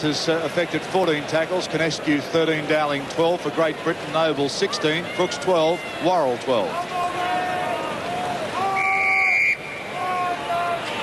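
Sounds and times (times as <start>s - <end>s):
crowd shouting: 3.2s - 11.0s
referee's whistle blast: 8.6s - 10.0s.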